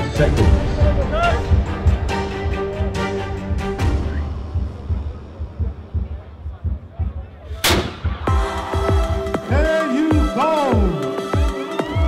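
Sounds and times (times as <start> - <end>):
low muffled rumble: 0.4 - 8.2
cannon blast: 7.6 - 8.3.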